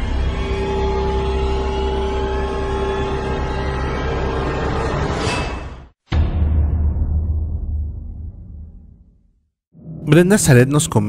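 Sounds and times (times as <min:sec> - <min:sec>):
dark horror background music: 0:00.0 - 0:08.9.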